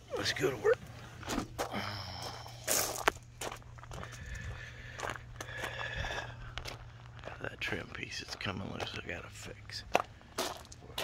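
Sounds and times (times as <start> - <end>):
low steady hum: 0.0 - 11.0
footsteps crunching on gravel: 0.2 - 11.0.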